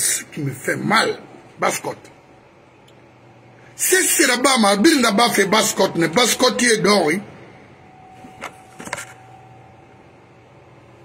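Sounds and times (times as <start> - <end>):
man's voice: 0.0 - 2.1, 3.8 - 7.3.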